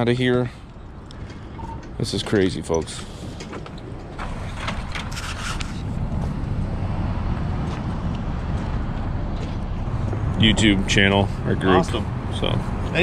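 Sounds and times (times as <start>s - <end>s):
vehicle engine rumbling: 0.0s - 13.0s.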